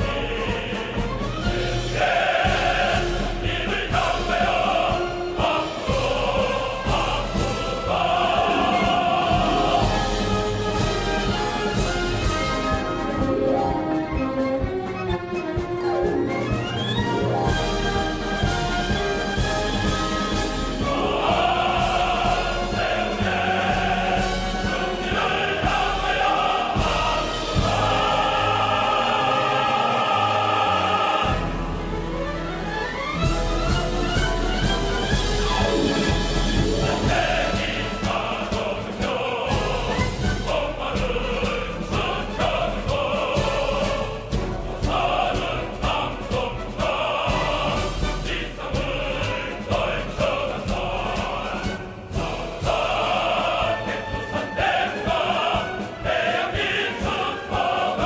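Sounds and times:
choir singing: 0.0 - 58.0
instrumental accompaniment: 0.0 - 58.0
steady beat: 2.0 - 15.0.

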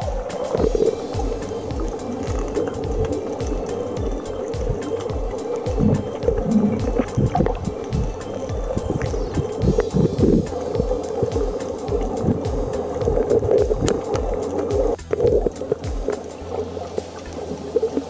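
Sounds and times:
low underwater rumbles: 0.0 - 18.0
sharp clicks and crackles: 0.0 - 18.0
underwater rush of moving water: 0.0 - 18.0.

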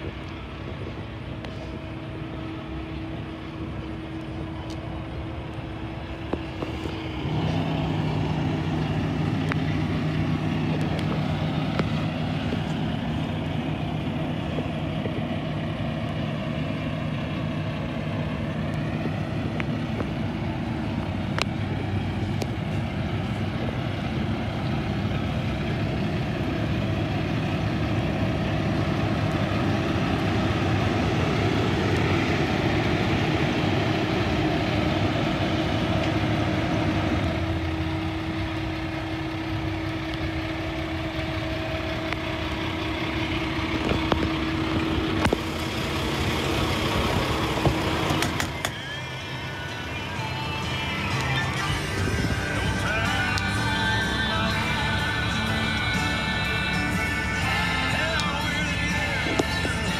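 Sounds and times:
diesel truck engine idling: 0.0 - 59.9.

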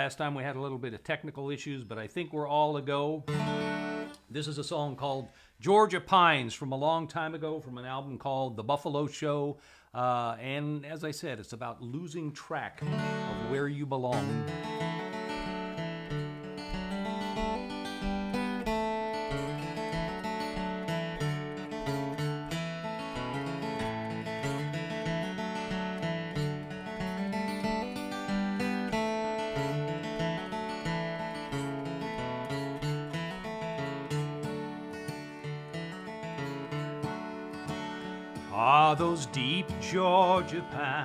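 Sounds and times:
acoustic guitar picked and strummed: 2.6 - 5.2, 12.7 - 41.0.

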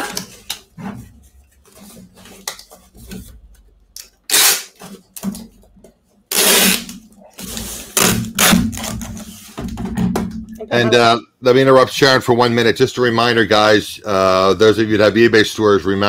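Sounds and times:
packing tape running from tape gun: 4.3 - 4.9, 6.3 - 9.2.

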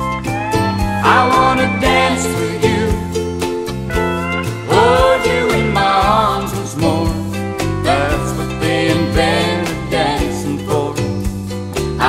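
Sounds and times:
gliding bending lead notes: 0.0 - 11.6
bass and guitar backing: 0.0 - 12.0.

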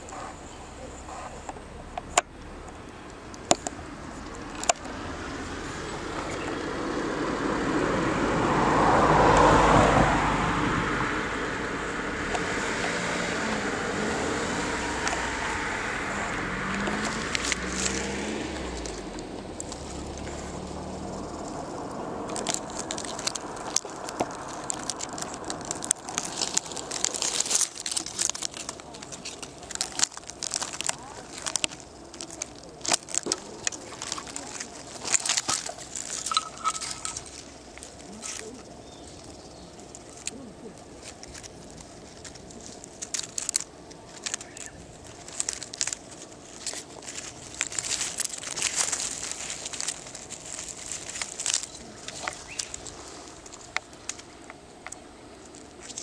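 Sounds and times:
dry leaves and twigs crackling: 0.0 - 56.0
vehicle passing: 0.0 - 56.0.

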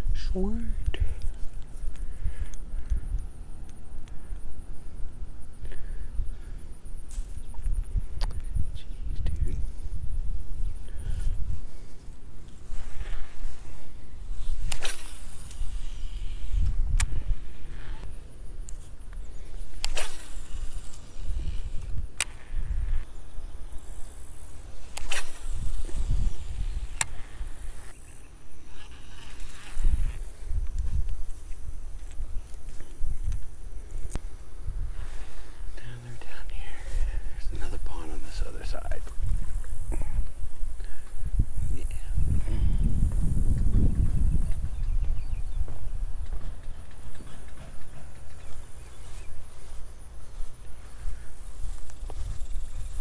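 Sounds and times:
wind buffeting microphone: 0.0 - 28.0, 29.4 - 53.0.

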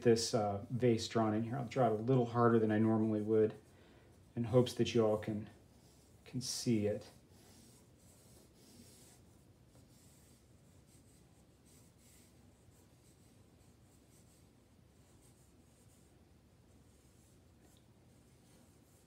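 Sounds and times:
pencil scratching on paper: 1.6 - 19.0.

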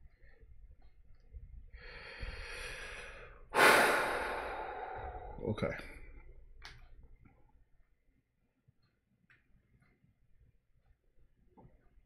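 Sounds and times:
man drawing breath: 1.8 - 5.4.

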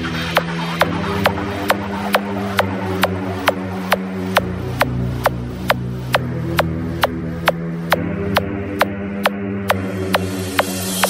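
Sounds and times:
heavy bass drone: 0.0 - 11.0
dance music beat: 0.2 - 6.2.

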